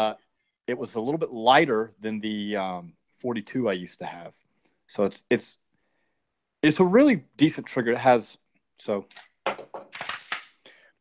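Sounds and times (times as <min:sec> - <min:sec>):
pistol action clicking and scraping: 0:09.1 - 0:10.6.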